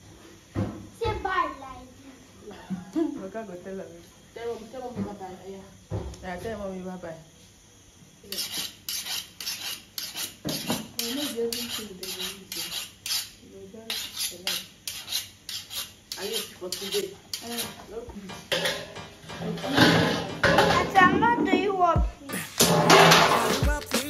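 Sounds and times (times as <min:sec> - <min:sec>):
knife blade scraping knife blade: 0:08.3 - 0:17.8.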